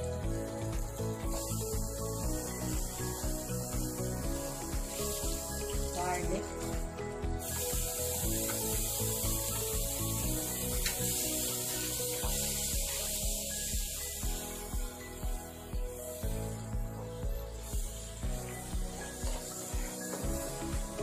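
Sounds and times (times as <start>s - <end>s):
background music with a beat: 0.0s - 21.0s
butter sizzling: 0.8s - 16.2s.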